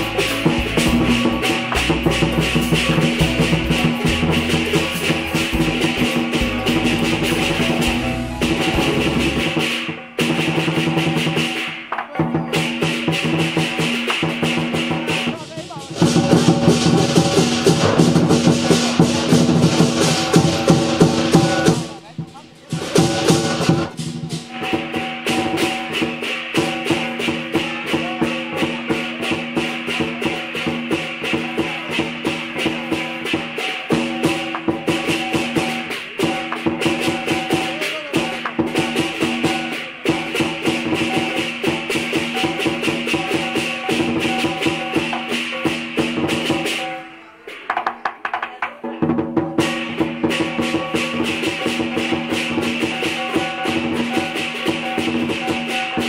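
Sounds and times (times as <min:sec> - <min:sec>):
music with fast percussion beat: 0:00.0 - 0:56.0.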